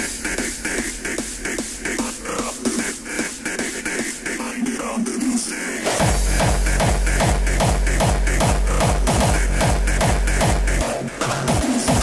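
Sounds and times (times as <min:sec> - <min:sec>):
electronic dance music: 0:00.0 - 0:12.0
deep bass: 0:04.4 - 0:12.0
pounding kick drum: 0:05.9 - 0:12.0.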